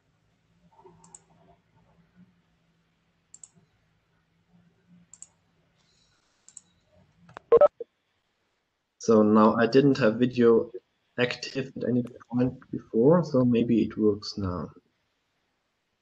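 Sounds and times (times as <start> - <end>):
faint steady hum: 0.0 - 16.0
computer mouse clicks: 0.8 - 1.4, 3.3 - 3.6, 5.1 - 6.7.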